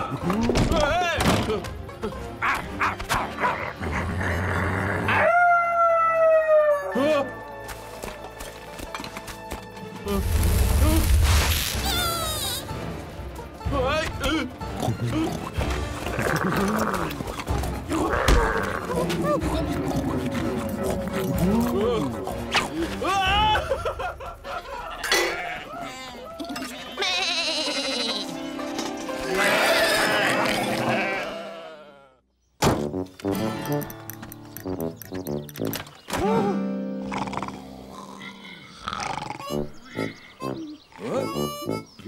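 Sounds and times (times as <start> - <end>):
cartoon music: 11.8 - 17.2, 33.2 - 38.1, 39.0 - 42.0
sheep bleating: 25.0 - 28.5, 29.2 - 32.1.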